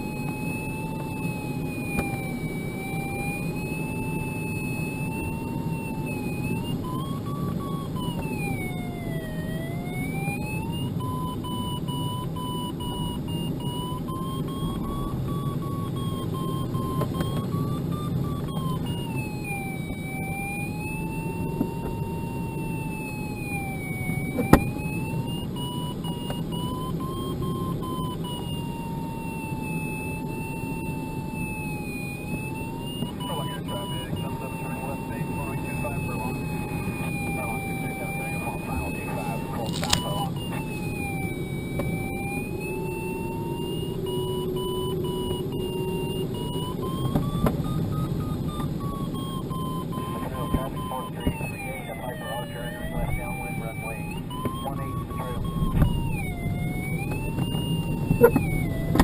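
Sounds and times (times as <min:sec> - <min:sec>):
variometer tone rising and falling: 0:00.0 - 0:59.0.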